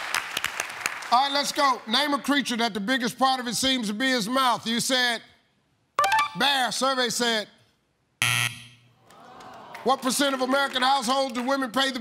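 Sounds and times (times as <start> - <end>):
game show buzzer: 6.0 - 6.4, 8.2 - 8.9.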